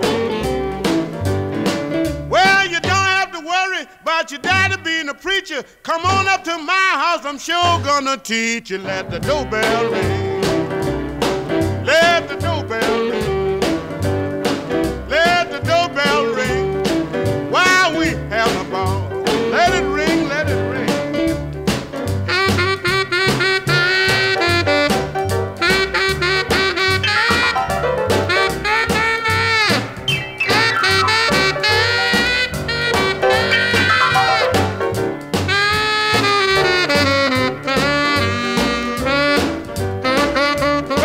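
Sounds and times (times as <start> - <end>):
saxophone solo: 0.0 - 1.0, 22.2 - 41.0
bass and drums: 0.0 - 3.3, 4.5 - 4.9, 9.0 - 41.0.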